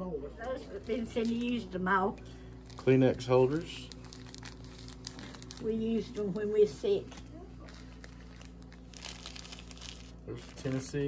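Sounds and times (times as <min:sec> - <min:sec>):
tissue packs crinkling and rustling: 0:00.6 - 0:01.7, 0:02.5 - 0:11.0.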